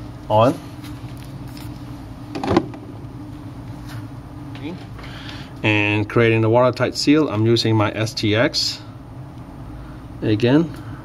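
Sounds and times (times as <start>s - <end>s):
low buzzing hum: 0.0s - 11.0s.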